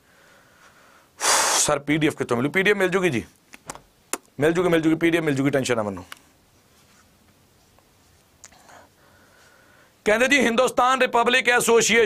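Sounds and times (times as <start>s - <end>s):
faint breathing: 0.0s - 1.7s, 8.5s - 10.0s.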